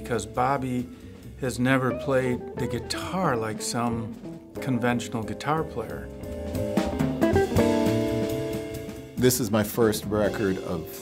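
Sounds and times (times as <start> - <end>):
bass notes: 0.0 - 11.0
drums: 0.0 - 11.0
jazz guitar: 0.0 - 11.0.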